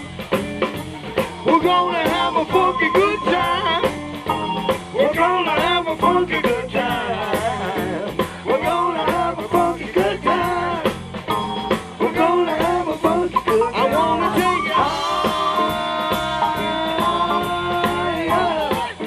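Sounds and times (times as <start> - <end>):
electric guitar: 0.0 - 19.0
keyboard: 0.0 - 19.0
steady drum beat: 0.0 - 19.0
person singing: 1.5 - 4.0, 5.0 - 11.0, 12.0 - 19.0
saxophone section: 13.4 - 19.0.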